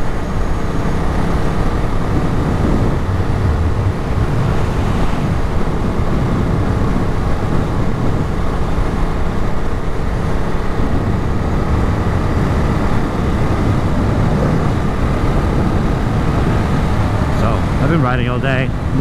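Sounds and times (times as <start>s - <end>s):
motorcycle engine at speed: 0.0s - 17.9s
wind noise: 0.0s - 19.0s.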